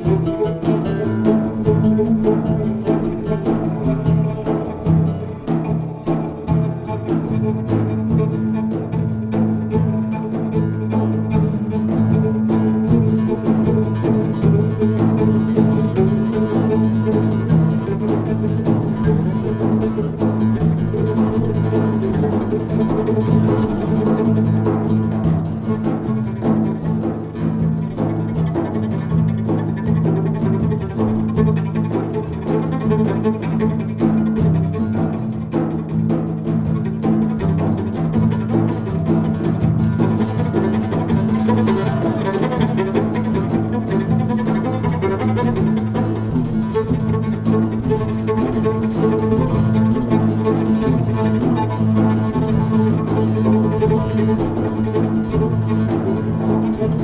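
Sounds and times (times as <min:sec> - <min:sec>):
bowed viola: 0:00.0 - 0:57.0
hand-struck frame drums: 0:00.0 - 0:57.0
plucked oud: 0:00.0 - 0:57.0.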